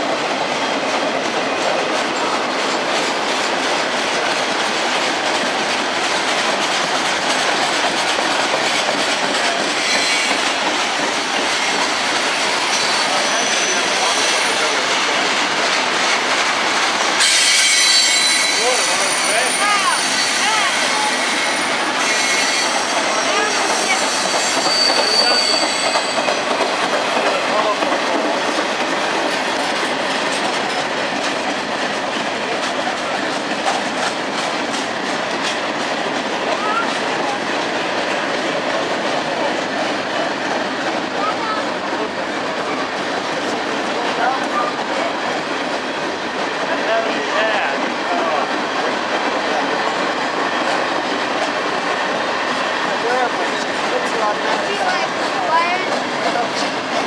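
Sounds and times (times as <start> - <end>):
freight train rolling past: 0.0 - 57.0
high-pitched wheel squeal: 9.8 - 10.4, 12.6 - 14.6, 17.2 - 26.4.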